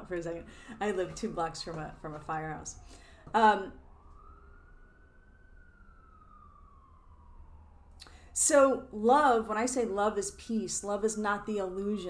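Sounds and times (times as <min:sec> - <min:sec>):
faint siren wailing: 0:00.0 - 0:12.0.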